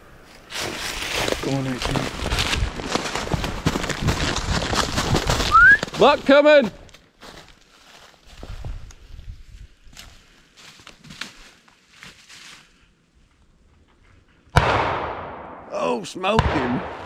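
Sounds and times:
shotgun shot with echo: 14.6 - 15.7, 16.3 - 17.0.

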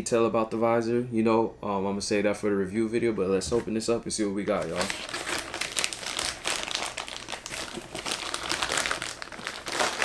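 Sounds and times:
plastic mailer bag crinkling: 4.5 - 10.0.

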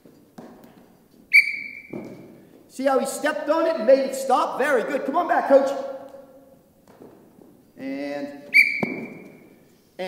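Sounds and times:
whistle blast: 1.3 - 2.0, 8.5 - 9.4
ball thumping off foot: 8.7 - 9.4.

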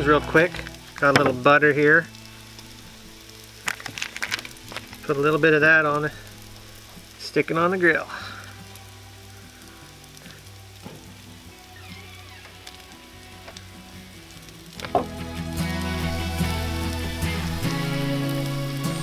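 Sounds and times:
background music: 0.0 - 19.0
faint steady sizzle: 0.0 - 19.0.

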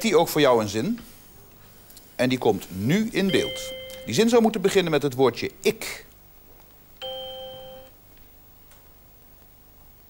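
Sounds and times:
electronic quiz-show chime: 3.2 - 4.3, 7.0 - 7.9.

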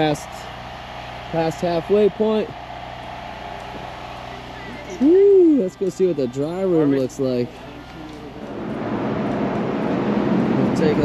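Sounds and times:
low mechanical hum: 0.0 - 11.0
outdoor noise: 0.0 - 11.0.

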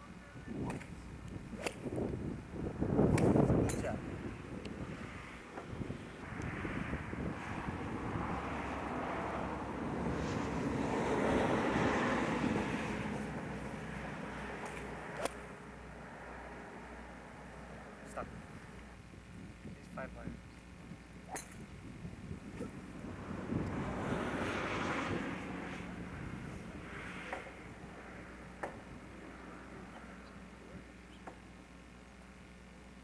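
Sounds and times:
golf club striking ball: 0.6 - 2.1, 3.1 - 4.0, 14.5 - 15.5, 21.3 - 21.8.

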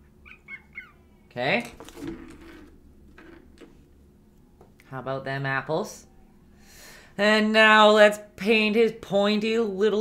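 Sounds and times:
low steady hum: 0.0 - 10.0.

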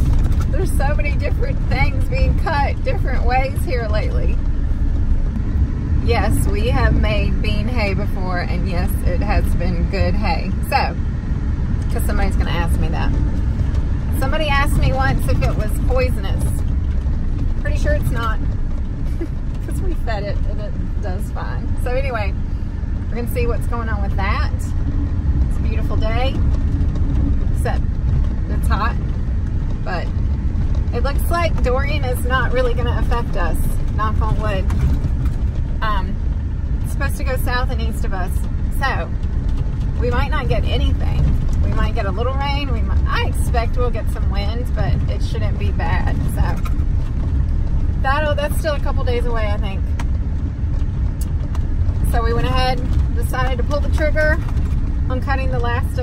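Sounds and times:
woman talking: 0.0 - 4.4, 6.0 - 11.0, 11.9 - 13.2, 14.1 - 16.6, 17.6 - 18.4, 19.1 - 22.4, 23.1 - 24.7, 25.5 - 26.4, 27.6 - 27.8, 28.5 - 29.0, 29.8 - 30.1, 30.9 - 34.8, 35.8 - 36.2, 36.8 - 39.2, 40.0 - 46.7, 48.0 - 49.9, 52.0 - 54.4, 55.1 - 56.0
vehicle road and engine noise: 0.0 - 56.0.

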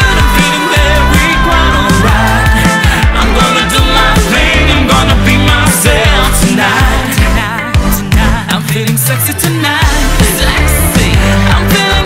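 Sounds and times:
pop music with bass-drum beat: 0.0 - 12.0.

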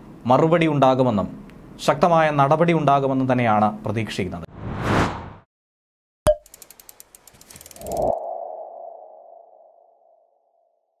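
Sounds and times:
fast run of ticks: 6.4 - 8.2.

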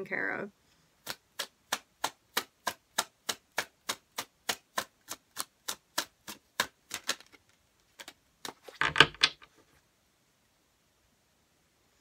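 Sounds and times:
cards being shuffled: 5.1 - 9.8.

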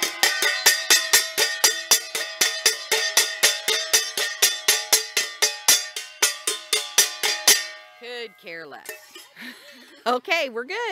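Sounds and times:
metal object clanging rapidly: 0.0 - 9.4.

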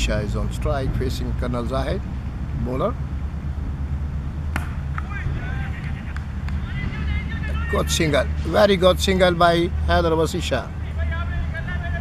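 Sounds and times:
steady low hum: 0.0 - 12.0
cricket bat striking ball: 4.5 - 5.2.

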